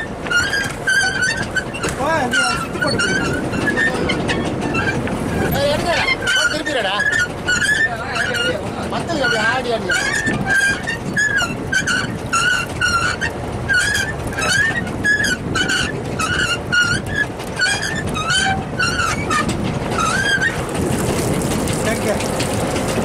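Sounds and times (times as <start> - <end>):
boat engine running: 0.0 - 23.0
hauling gear squeaking: 0.0 - 23.0.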